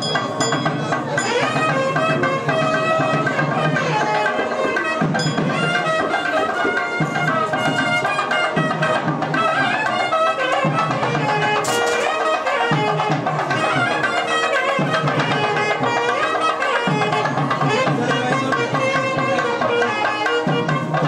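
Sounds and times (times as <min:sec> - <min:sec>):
steady drumming: 0:00.0 - 0:21.0
wind instrument melody: 0:00.0 - 0:21.0.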